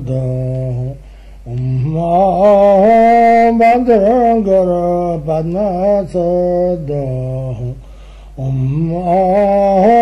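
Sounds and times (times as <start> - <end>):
man chanting: 0.0 - 7.8, 8.4 - 10.0.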